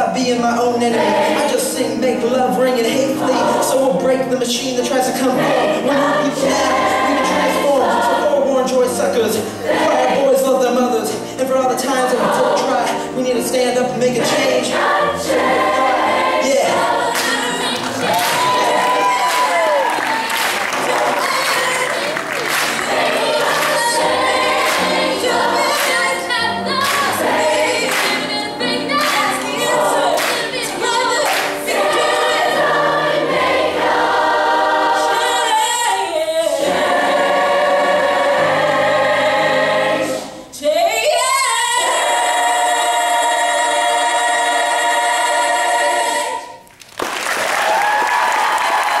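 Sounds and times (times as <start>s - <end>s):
choir singing: 0.5s - 46.6s.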